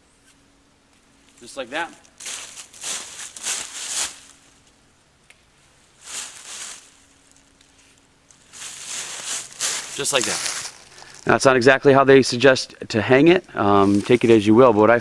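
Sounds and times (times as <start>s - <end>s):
footsteps through dry leaves: 1.9s - 4.6s, 5.9s - 11.4s, 13.8s - 14.5s.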